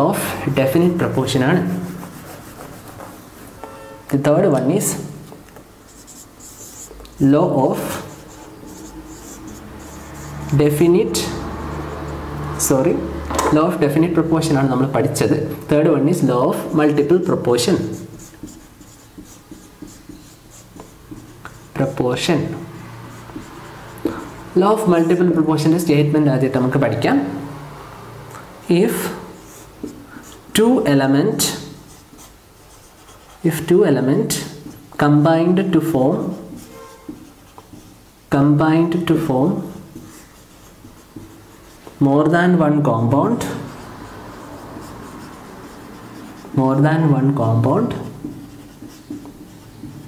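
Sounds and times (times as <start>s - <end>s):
marker writing on whiteboard: 0.0s - 27.6s, 28.6s - 50.0s.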